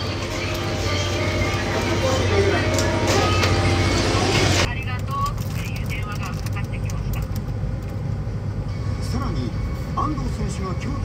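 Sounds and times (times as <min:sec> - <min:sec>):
shop voices: 0:00.0 - 0:07.4.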